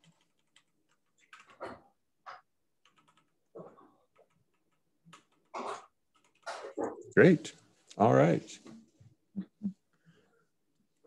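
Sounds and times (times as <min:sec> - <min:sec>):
computer keyboard keystrokes: 0:00.0 - 0:01.6, 0:02.8 - 0:03.3.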